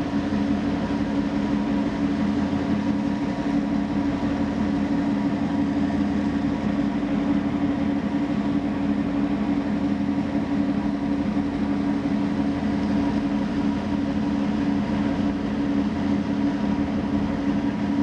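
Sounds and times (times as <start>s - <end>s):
ship engine droning: 0.0s - 18.0s.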